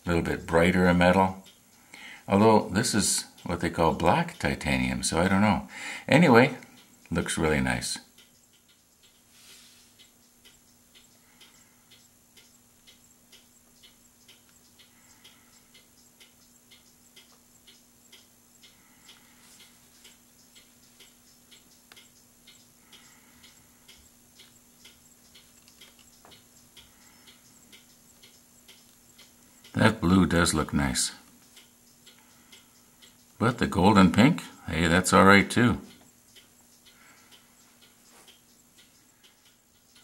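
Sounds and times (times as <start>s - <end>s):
faint regular ticking: 0.0s - 40.0s
low room hum: 0.0s - 40.0s.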